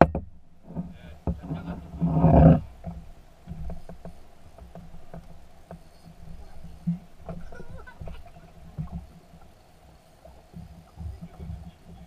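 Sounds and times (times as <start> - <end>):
light irregular ticking: 0.0 - 12.0
water lapping against boat hull: 0.0 - 12.0.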